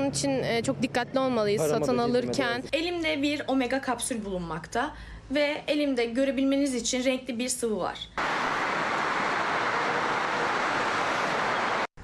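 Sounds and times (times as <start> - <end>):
steady static hiss: 8.2 - 11.9.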